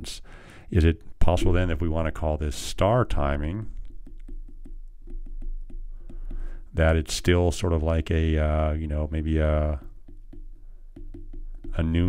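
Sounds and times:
stylus tapping on glass screen: 1.2s - 2.3s, 3.2s - 6.8s, 9.6s - 12.0s.

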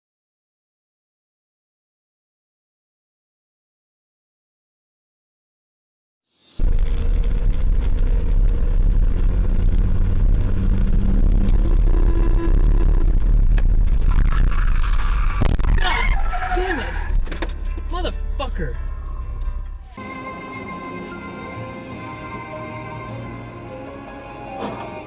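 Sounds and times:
car road and engine rumble: 6.6s - 22.4s.

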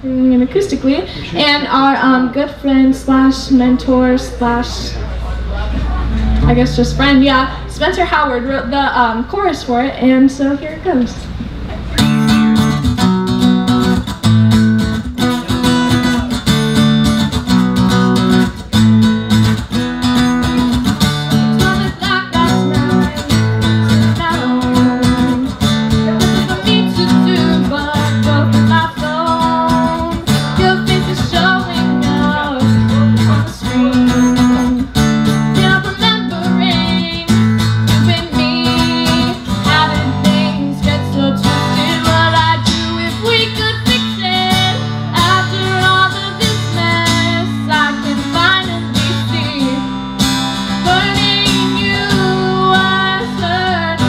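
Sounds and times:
woman singing: 0.0s - 4.8s, 6.4s - 11.2s, 21.3s - 50.0s, 50.7s - 54.0s
acoustic guitar strumming: 5.9s - 9.8s, 11.8s - 54.0s.

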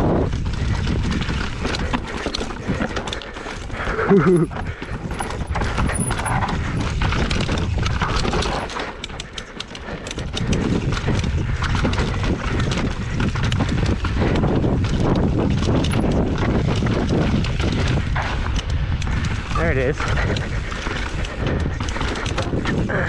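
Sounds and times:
bike rattling clicks: 0.0s - 23.0s
steady low rumble: 0.0s - 23.0s.

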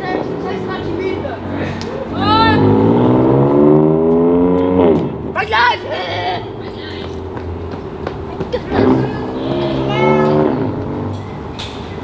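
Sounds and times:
car engine accelerating: 0.2s - 5.4s, 8.5s - 11.5s
people shouting and whooping: 1.9s - 2.7s.

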